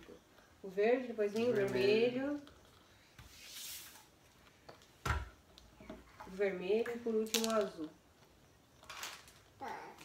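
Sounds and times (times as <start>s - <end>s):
plastic toy pieces clattering: 7.2s - 7.9s, 8.8s - 10.0s.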